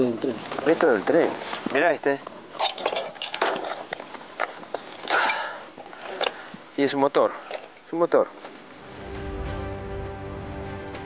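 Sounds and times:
metal wreckage clinking and scraping: 2.6 - 4.0.

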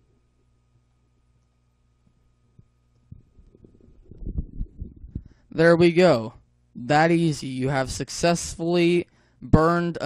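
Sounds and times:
faint low hum: 0.0 - 10.0
soft low thuds: 2.5 - 5.4.

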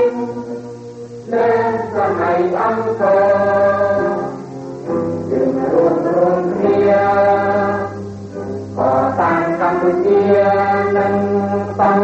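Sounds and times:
choir singing: 0.0 - 4.5, 5.2 - 12.0.

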